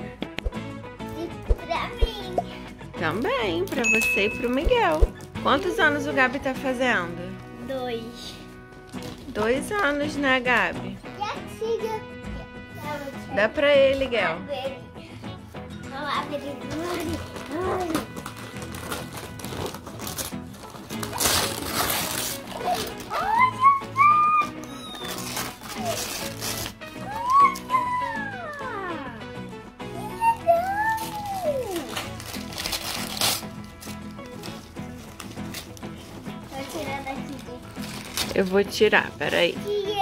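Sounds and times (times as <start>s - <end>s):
background music: 0.0s - 40.0s
wrapping paper tearing: 8.8s - 9.4s, 16.6s - 29.0s, 30.0s - 38.7s
child exclaiming: 22.6s - 25.1s, 27.0s - 29.2s, 29.9s - 31.9s, 39.7s - 40.0s.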